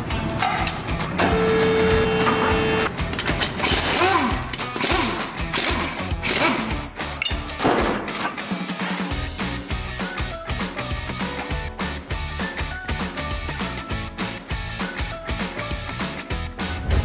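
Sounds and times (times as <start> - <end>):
background music: 0.0 - 17.0
pneumatic impact wrench running: 1.2 - 7.1.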